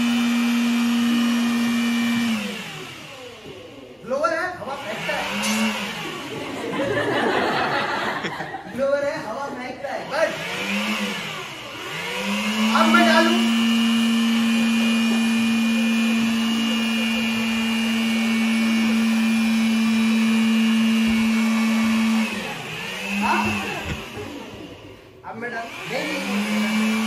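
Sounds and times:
electric air blower whining: 0.0s - 27.0s.

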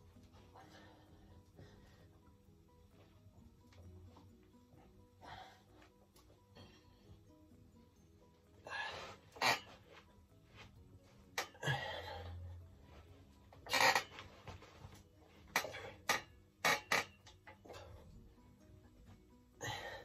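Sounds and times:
quiet background music: 0.0s - 20.0s
dumbbell plates clinking: 15.4s - 18.0s.

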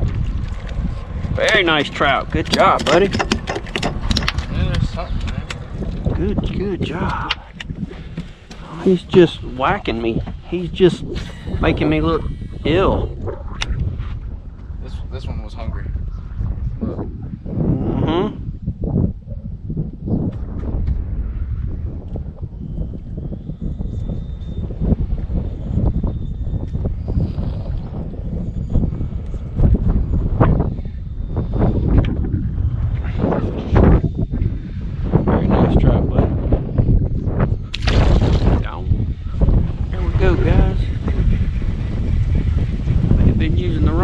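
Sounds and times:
wind buffeting microphone: 0.0s - 44.0s
indistinct voices: 1.4s - 13.8s, 16.8s - 18.6s.

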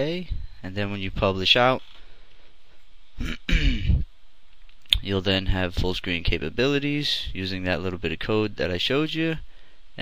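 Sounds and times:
man clearing his throat: 3.2s - 4.1s.

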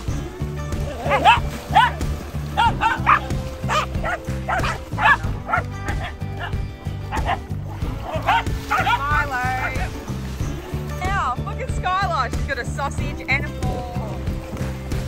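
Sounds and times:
background music with bass line: 0.0s - 15.0s
dogs barking and yipping: 0.7s - 10.0s
dog yelping: 0.8s - 9.9s.

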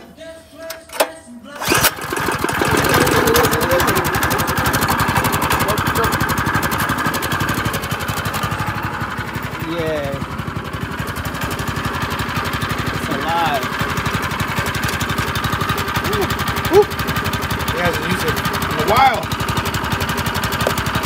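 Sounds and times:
small engine starting and running: 0.6s - 21.0s.

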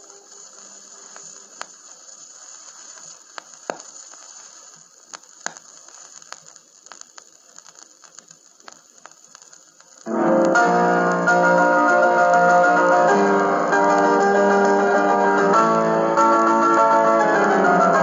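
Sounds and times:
vinyl record hiss: 0.0s - 18.0s
stylus clicks and pops: 2.6s - 11.2s.

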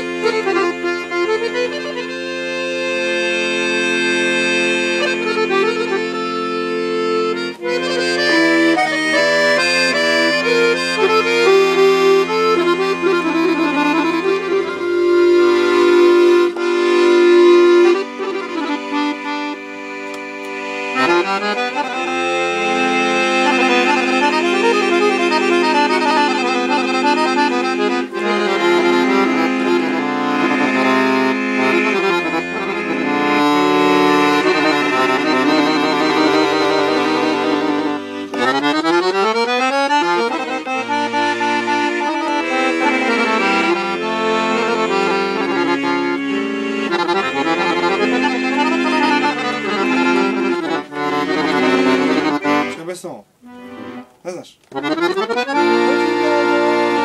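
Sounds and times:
piano accordion playing: 0.0s - 57.0s.

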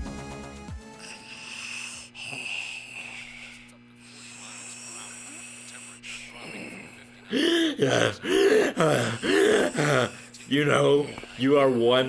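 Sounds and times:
wheezing hiss: 0.8s - 10.5s
steady low hum: 1.0s - 12.0s.

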